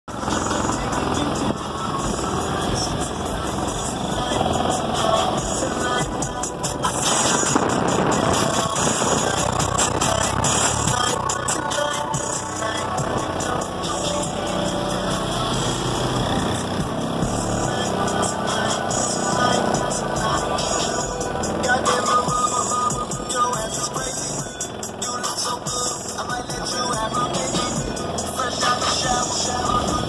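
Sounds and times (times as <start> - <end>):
bass-heavy music from car stereo: 0.1 - 30.0.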